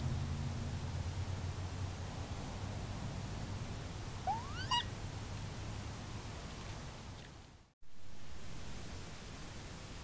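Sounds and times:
steady hiss and low hum: 0.0s - 10.0s
fox squeaky call: 4.2s - 4.9s.

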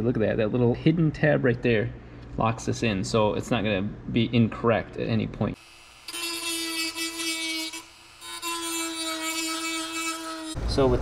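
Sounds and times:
rotary tool grinding plastic: 6.0s - 10.6s.

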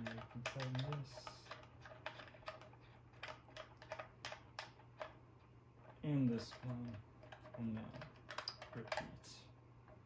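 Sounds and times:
binding post caps clicking: 0.0s - 5.2s, 6.2s - 9.2s.

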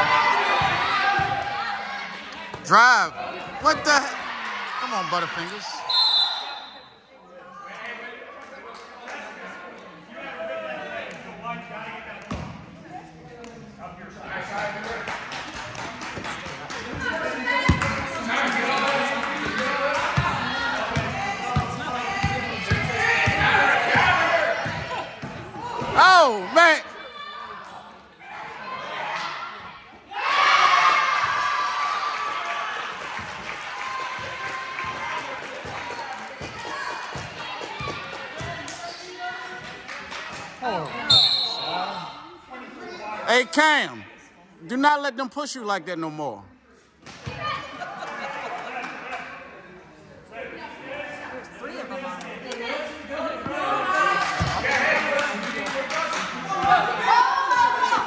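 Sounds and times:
spectators' voices echoing: 0.0s - 46.7s, 47.3s - 58.0s
loud short whistle blasts: 5.9s - 6.9s, 41.1s - 41.8s.

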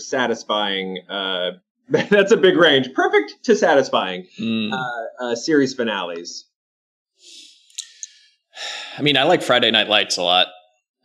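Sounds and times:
man speaking: 0.0s - 6.4s, 7.3s - 10.6s
man sighing: 4.4s - 4.9s
mouth clicks: 7.7s - 8.2s.

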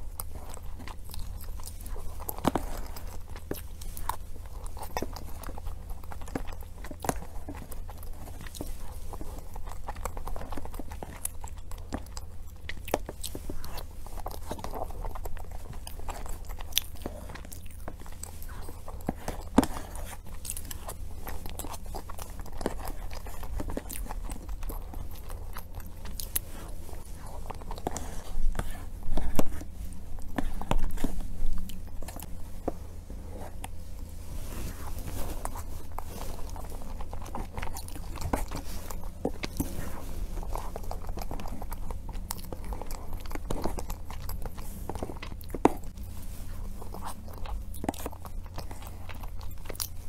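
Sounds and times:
mouth clicks and chewing: 0.0s - 50.0s.

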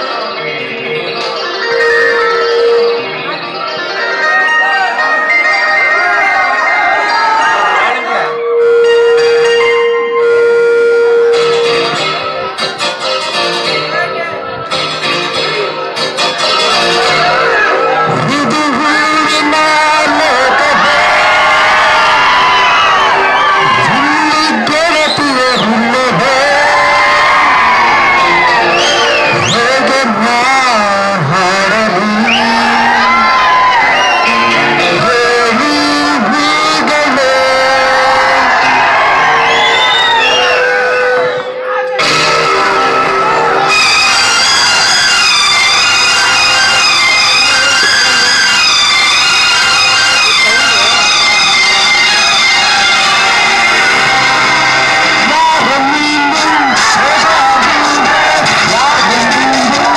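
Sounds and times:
loud steady tone: 0.0s - 12.8s
audience whooping: 16.6s - 30.9s, 31.5s - 59.9s
man singing through pa system: 18.0s - 21.4s, 23.7s - 27.4s, 29.1s - 33.2s, 34.2s - 38.8s, 50.0s - 59.9s.

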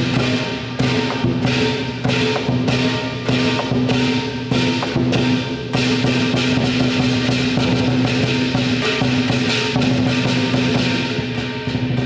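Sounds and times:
hand cymbals clashing: 0.0s - 12.0s
lion dance drum beating: 0.0s - 12.0s.

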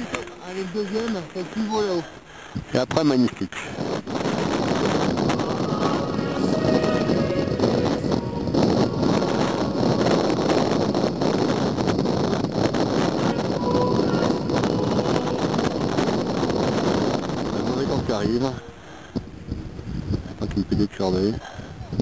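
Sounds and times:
wind blowing on microphone: 2.5s - 22.0s.

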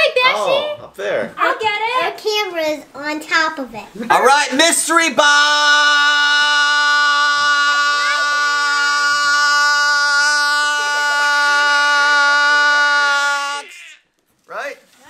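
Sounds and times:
loud held comedy tone: 4.3s - 14.0s.

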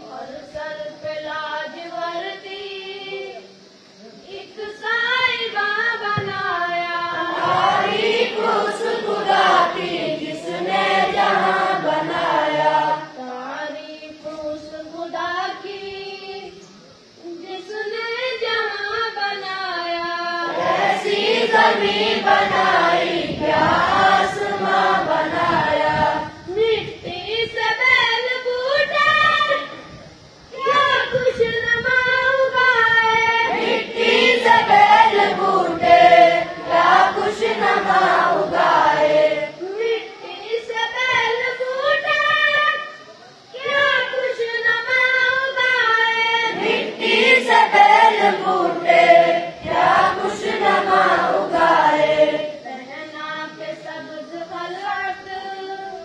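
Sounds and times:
boys chanting a prayer: 0.0s - 56.0s.

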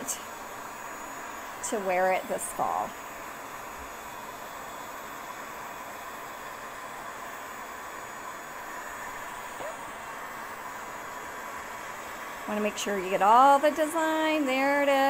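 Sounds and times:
heat gun fan hissing: 0.0s - 15.0s.

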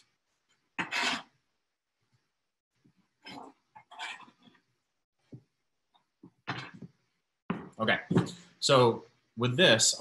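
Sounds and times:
knife scraping plastic cutting board: 0.8s - 1.3s.

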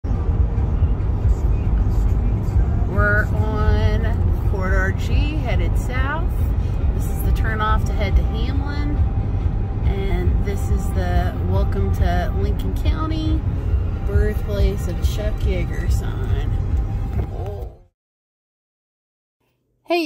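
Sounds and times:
car tyres and engine rumble: 0.1s - 17.9s.

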